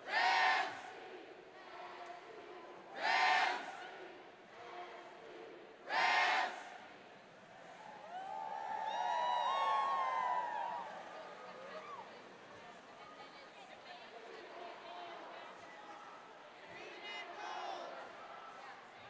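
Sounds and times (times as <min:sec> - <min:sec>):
crowd shouting in unison: 0:02.9 - 0:03.8, 0:05.9 - 0:06.6
crowd cheering and whooping: 0:07.7 - 0:12.1.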